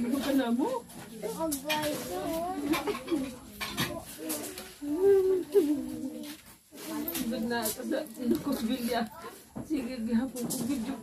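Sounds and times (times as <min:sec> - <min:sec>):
women talking: 0:00.0 - 0:01.7, 0:07.0 - 0:11.0.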